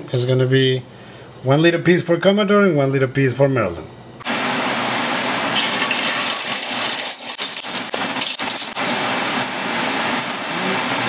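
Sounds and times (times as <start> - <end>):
meat sizzling in hot oil: 5.4 - 10.4.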